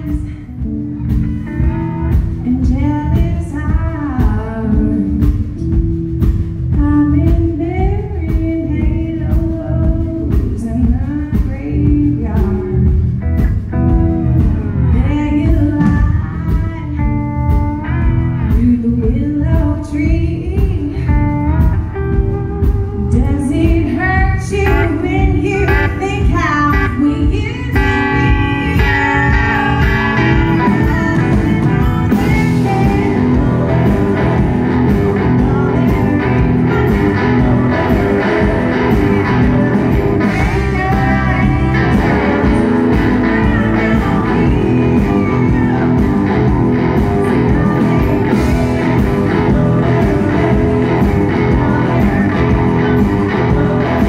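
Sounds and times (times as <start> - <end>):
bass guitar: 0.0 - 54.0
drums: 0.0 - 54.0
woman singing: 0.0 - 54.0
electric guitar bending notes: 11.8 - 18.8, 21.1 - 54.0.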